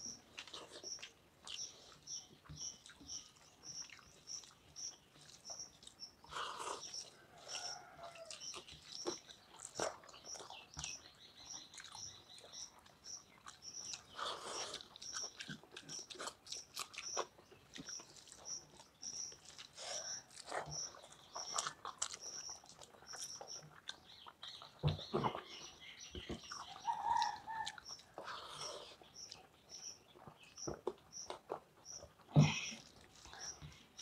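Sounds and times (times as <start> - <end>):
wet chewing: 0.0 - 34.0.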